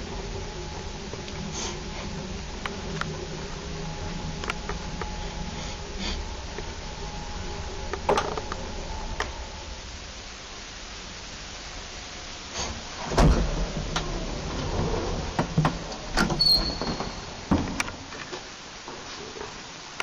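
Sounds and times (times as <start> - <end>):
sliding doors opening: 0.0 - 19.5
lift humming: 0.0 - 19.6.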